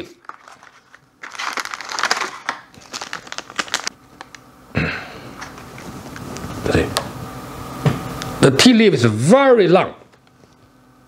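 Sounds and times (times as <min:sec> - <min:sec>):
paper packet crinkling: 0:00.0 - 0:04.4.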